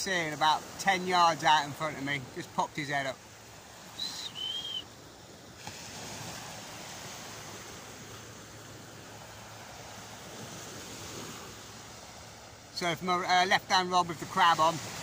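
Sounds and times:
waves breaking on a beach: 0:00.0 - 0:15.0
short high whistle notes: 0:04.0 - 0:04.9.

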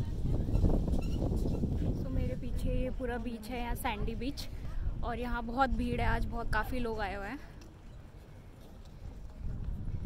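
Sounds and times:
wind rumble on microphone: 0:00.0 - 0:07.4, 0:08.8 - 0:10.0
faint footsteps: 0:07.3 - 0:10.0.

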